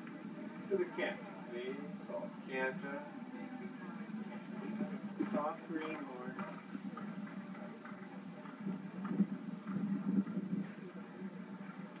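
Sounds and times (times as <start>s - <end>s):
steady low hum: 0.0s - 12.0s
faint hoofbeats of cantering horse: 3.0s - 12.0s.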